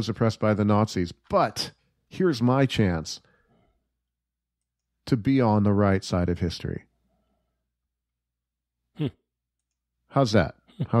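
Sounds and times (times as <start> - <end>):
man speaking: 0.0 - 3.3, 5.0 - 6.9, 10.1 - 11.0.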